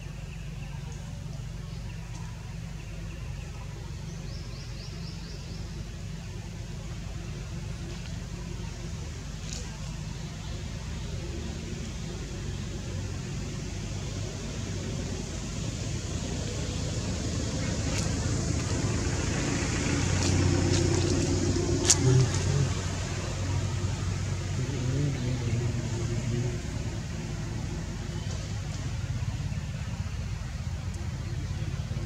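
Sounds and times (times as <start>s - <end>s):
faint voices: 0.0s - 32.0s
motor vehicle rumble: 0.0s - 32.0s.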